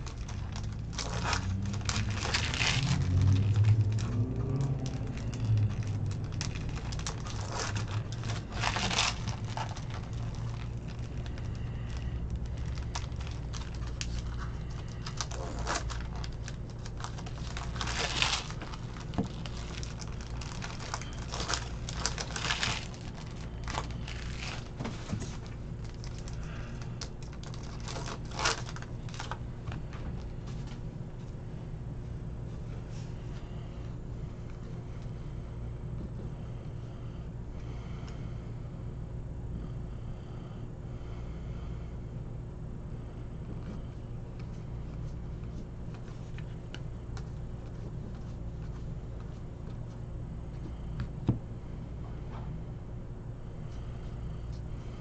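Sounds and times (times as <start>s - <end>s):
foil wrapper crinkling: 0.0s - 30.3s
cards being shuffled: 0.0s - 30.8s
steady low hum: 0.0s - 55.0s.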